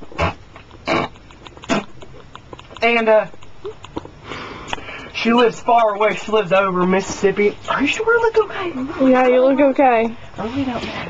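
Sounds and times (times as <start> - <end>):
man speaking: 2.8 - 3.3, 5.1 - 9.0
man breathing noisily: 4.2 - 5.2.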